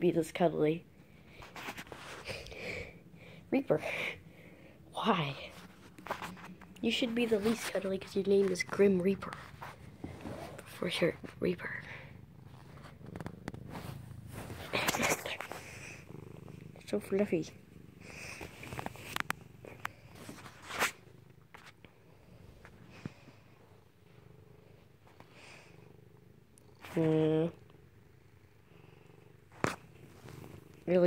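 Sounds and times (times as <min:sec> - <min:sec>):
cat purring: 0:00.0 - 0:31.0.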